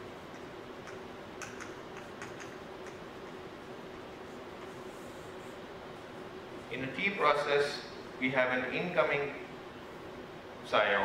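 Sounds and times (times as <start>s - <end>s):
low room hum: 0.0s - 11.0s
chalk tapping and scratching: 0.2s - 6.2s.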